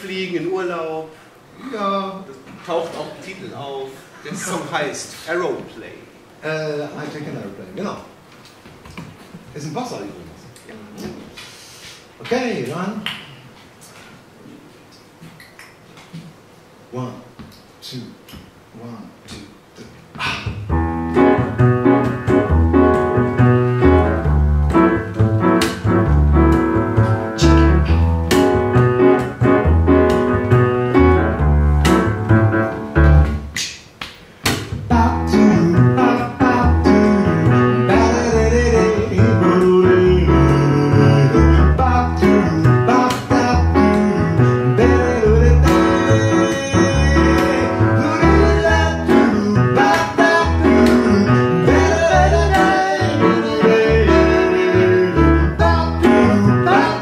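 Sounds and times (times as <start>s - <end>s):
upright piano: 20.2s - 33.6s, 34.6s - 57.0s
plucked double bass: 20.5s - 33.4s, 34.8s - 57.0s.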